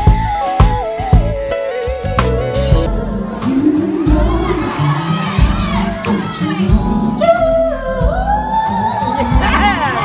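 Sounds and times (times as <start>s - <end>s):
band playing soul music: 0.0s - 10.0s
audience cheering and whooping: 2.2s - 6.8s.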